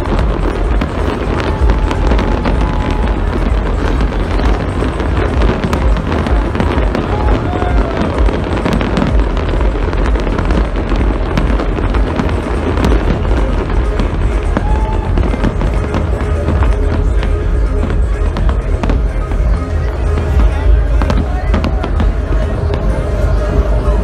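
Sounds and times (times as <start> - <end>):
deep rumble: 0.0 - 24.0
fireworks crackling: 0.0 - 24.0.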